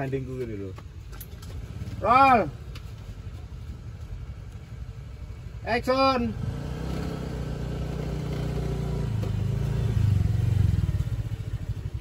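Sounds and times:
motor scooter engine: 6.3 - 12.0.

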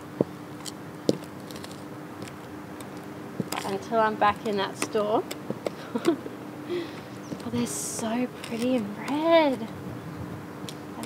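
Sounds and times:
faint steady hum: 0.0 - 11.0
boot footsteps on concrete: 0.2 - 6.1, 7.2 - 8.9.

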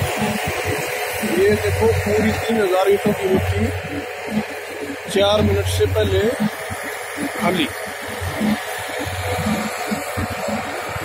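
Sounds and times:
clay mixing machine running: 0.0 - 11.0
tractor engine rumble: 0.0 - 11.0.

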